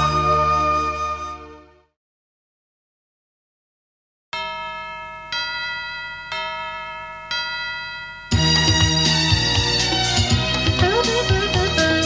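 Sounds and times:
bell-like chime ringing: 0:04.4 - 0:10.4.

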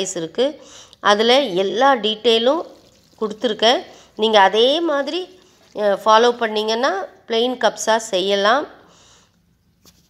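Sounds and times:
woman narrating: 0:00.0 - 0:08.9.

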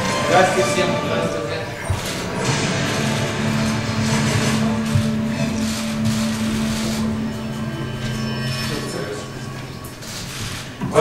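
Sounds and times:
music with held low notes: 0:00.0 - 0:10.9
room hum: 0:00.0 - 0:11.0.

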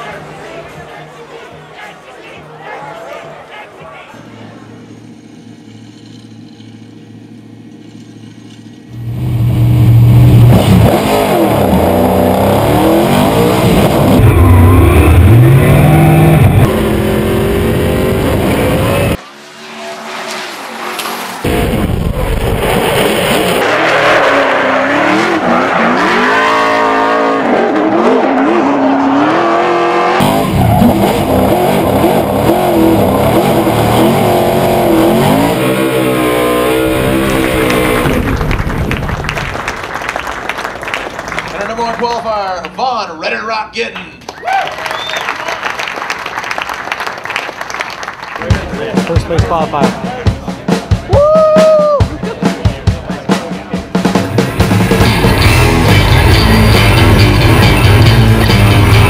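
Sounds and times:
car engine revving hard: 0:09.0 - 0:19.2, 0:20.0 - 0:38.5.

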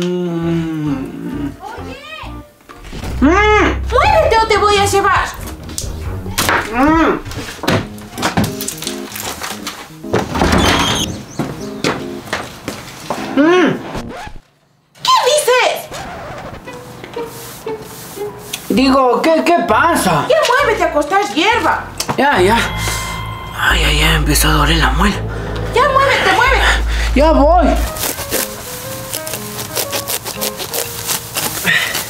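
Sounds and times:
simple stepping melody: 0:03.8 - 0:10.1, 0:22.3 - 0:30.1
grass being torn up by hand: 0:27.8 - 0:32.0.

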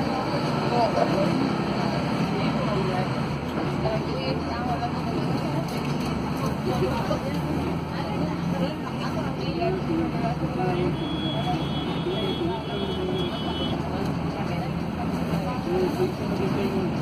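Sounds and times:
bus diesel engine drone: 0:00.0 - 0:17.0
passengers talking: 0:00.0 - 0:17.0
road noise: 0:00.0 - 0:17.0.

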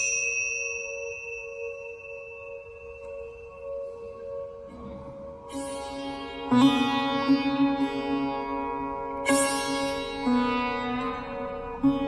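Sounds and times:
struck bell ringing: 0:00.0 - 0:03.6
wavering two-note drone: 0:00.0 - 0:12.0.

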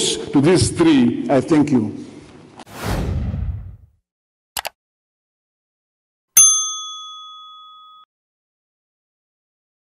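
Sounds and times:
bell-like chime ringing: 0:06.4 - 0:08.1.

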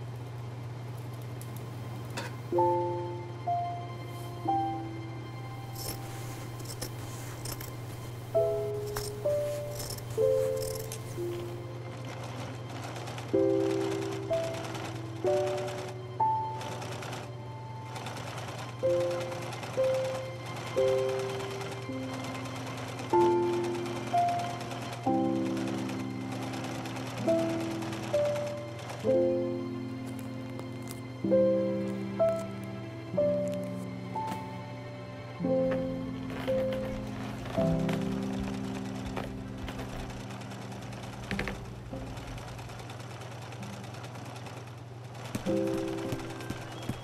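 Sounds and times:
soft music of held notes: 0:01.0 - 0:47.0
scissor snips: 0:05.6 - 0:11.5
sewing machine running: 0:05.6 - 0:31.0, 0:36.3 - 0:47.0
piano note: 0:23.0 - 0:42.8.

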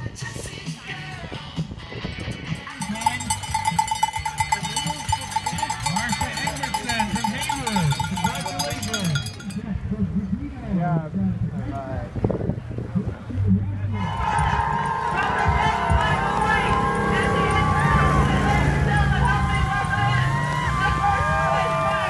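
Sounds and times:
cowbell ringing and clattering: 0:02.1 - 0:09.8, 0:14.2 - 0:14.9, 0:17.8 - 0:19.2
spectators shouting encouragement: 0:13.9 - 0:22.0.

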